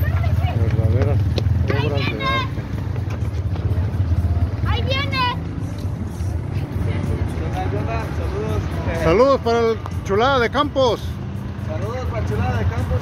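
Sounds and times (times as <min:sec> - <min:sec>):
steady low street rumble: 0:00.0 - 0:13.0.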